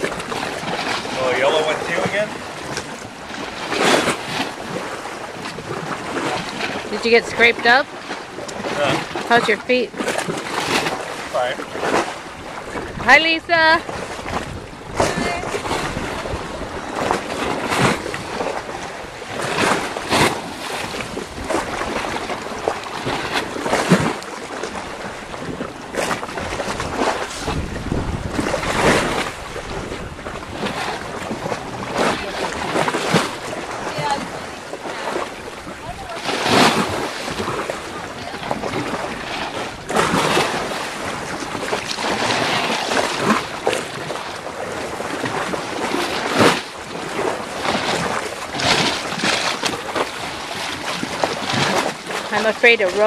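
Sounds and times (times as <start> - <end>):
sea water splashing: 0.0 - 53.0
wind buffeting microphone: 0.0 - 53.0.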